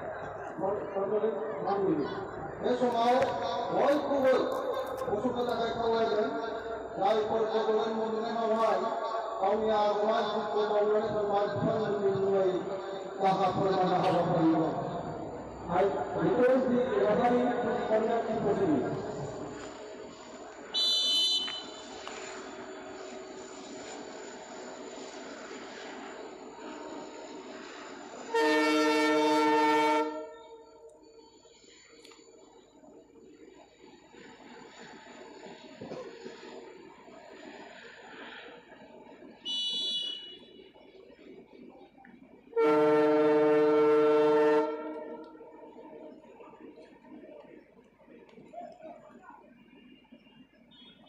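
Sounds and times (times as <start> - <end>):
shrill whistle blast: 20.7 - 22.0, 39.4 - 40.6
loud steady horn blast: 20.7 - 22.2, 28.3 - 30.8, 39.5 - 40.6, 42.5 - 45.6.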